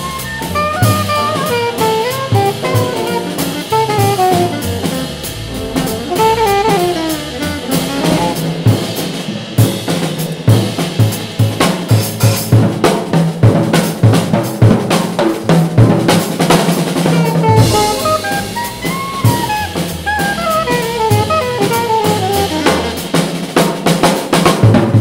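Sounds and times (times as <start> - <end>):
jazz drum kit solo: 0.0 - 25.0
alto saxophone phrase: 0.8 - 8.6, 17.1 - 23.1.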